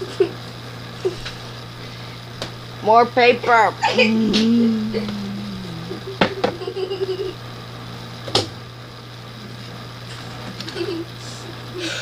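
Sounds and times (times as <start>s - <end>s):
steady low hum: 1.5s - 7.4s.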